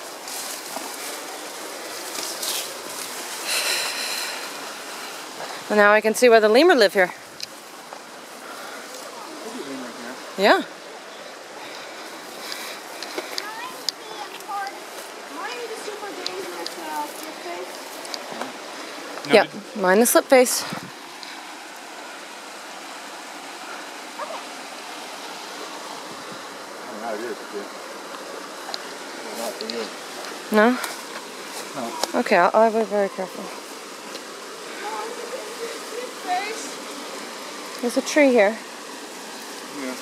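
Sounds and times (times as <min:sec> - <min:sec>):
creek water rushing: 0:00.0 - 0:40.0
steady background hiss: 0:00.0 - 0:40.0.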